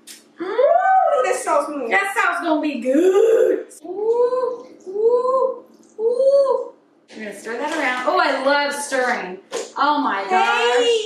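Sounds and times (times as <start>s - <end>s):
person humming: 3.8s - 6.7s.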